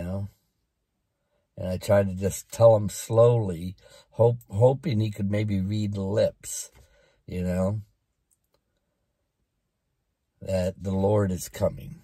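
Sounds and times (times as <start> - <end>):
faint small clicks: 8.1 - 8.9.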